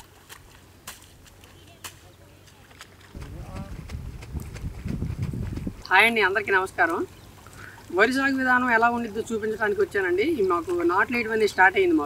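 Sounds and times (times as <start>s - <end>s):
wind buffeting microphone: 3.1s - 5.9s.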